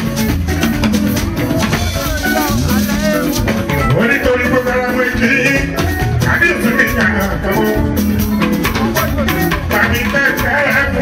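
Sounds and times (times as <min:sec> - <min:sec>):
drums and shakers: 0:00.0 - 0:11.0
man singing into microphone: 0:01.6 - 0:11.0.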